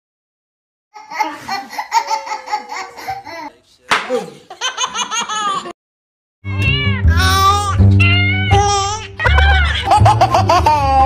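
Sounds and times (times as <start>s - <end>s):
baby laughing: 1.0s - 3.6s, 4.5s - 5.8s, 7.1s - 11.0s
person laughing in pulses: 9.2s - 11.0s.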